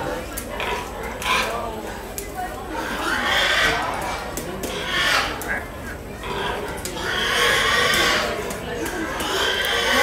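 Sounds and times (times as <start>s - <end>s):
murmur of crowd voices: 0.0s - 10.0s
pigs squealing: 2.8s - 5.5s, 6.2s - 10.0s.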